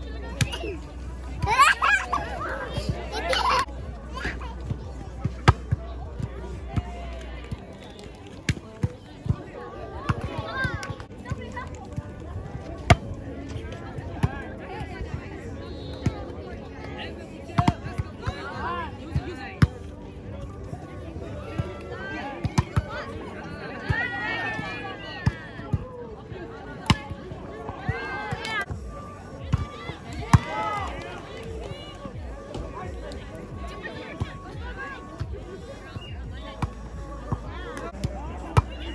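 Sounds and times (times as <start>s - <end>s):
players shouting: 1.3s - 4.4s, 26.4s - 35.2s.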